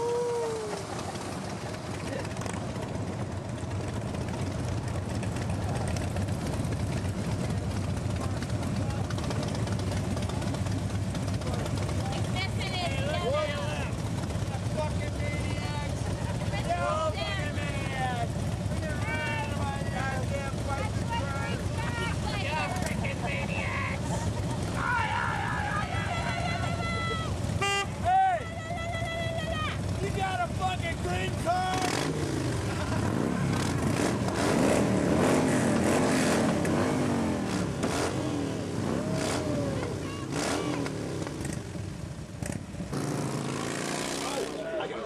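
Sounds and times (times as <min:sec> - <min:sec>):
people's voices: 0:00.0 - 0:02.6, 0:04.4 - 0:34.0, 0:35.4 - 0:41.5, 0:43.4 - 0:45.0
motorcycle engines rumbling: 0:00.0 - 0:45.0.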